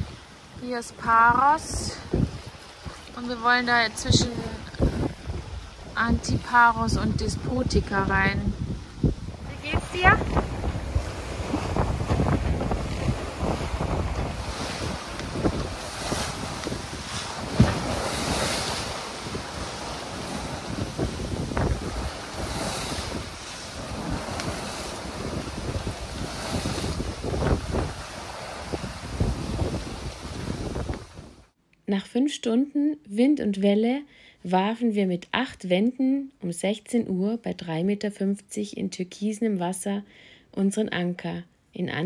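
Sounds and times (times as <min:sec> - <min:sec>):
waves rushing and splashing: 0:00.0 - 0:31.5
wind buffeting microphone: 0:00.0 - 0:31.5.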